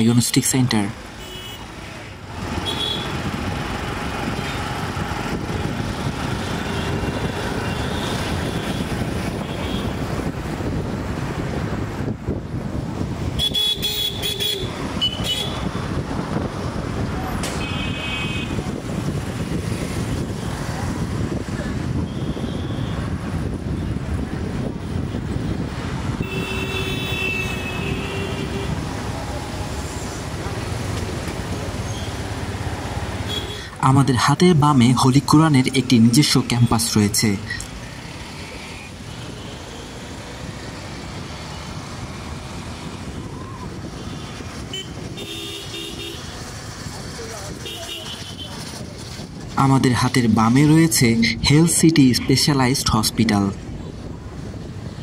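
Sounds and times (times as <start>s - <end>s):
engine and road rumble: 0.0s - 55.0s
vehicle horns tooting: 1.2s - 1.8s, 2.6s - 3.2s, 6.5s - 10.0s, 13.3s - 15.8s, 17.4s - 18.7s, 21.9s - 23.2s, 26.1s - 28.8s, 33.2s - 33.8s, 43.9s - 46.6s, 47.5s - 48.8s.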